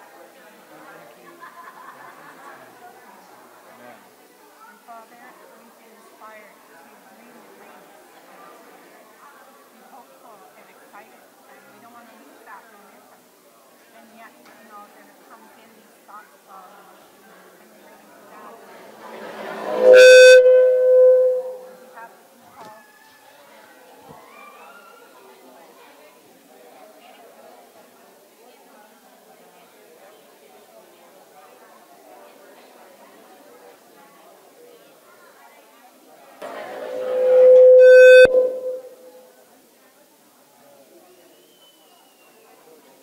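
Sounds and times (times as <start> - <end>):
loud feedback howl: 19.1 - 21.8, 36.4 - 39.2.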